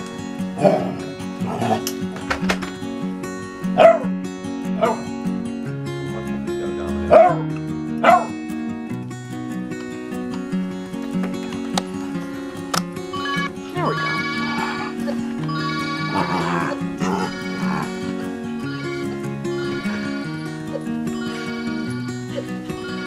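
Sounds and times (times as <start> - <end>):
background music: 0.0 - 23.0
dog barking: 0.6 - 1.8, 3.8 - 4.1, 4.8 - 5.1, 6.8 - 8.4.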